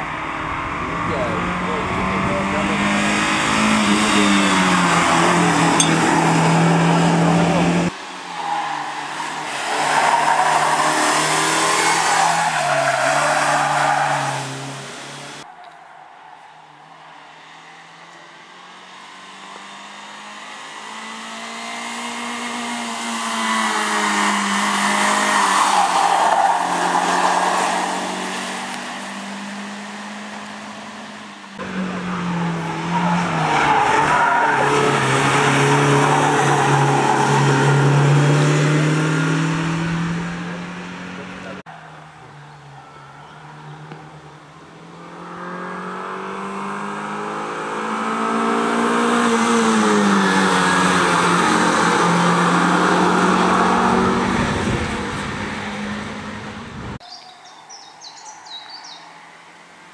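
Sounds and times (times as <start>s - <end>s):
rally car engine revving past: 26.6s - 41.6s, 44.9s - 56.7s.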